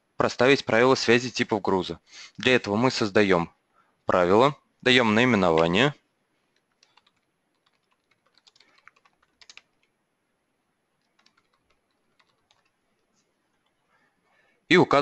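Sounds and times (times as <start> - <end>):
typing on computer keyboard: 6.6 - 10.0, 11.0 - 12.8.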